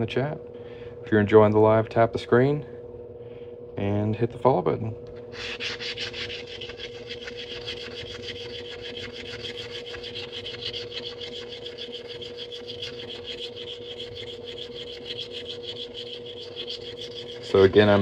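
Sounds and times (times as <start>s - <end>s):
sanding metal ring edge: 5.3s - 18.0s.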